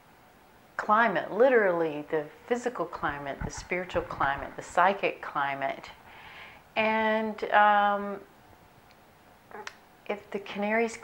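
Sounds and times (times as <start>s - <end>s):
woman speaking: 0.8s - 6.0s, 6.8s - 8.3s, 10.1s - 11.0s.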